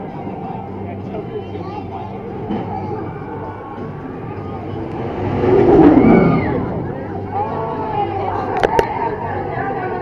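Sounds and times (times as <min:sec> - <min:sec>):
drop tower rushing sound: 0:03.8 - 0:08.1.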